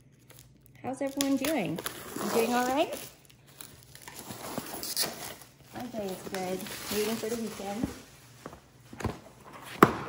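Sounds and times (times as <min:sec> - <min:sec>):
plastic wrap crinkling: 0:00.0 - 0:08.9.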